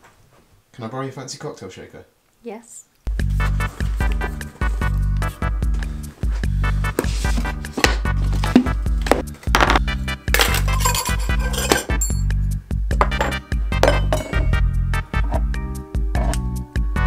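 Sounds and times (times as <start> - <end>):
background music with steady beat: 3.1 - 17.0
metal shaker tins clinking: 10.4 - 12.3, 13.0 - 14.6.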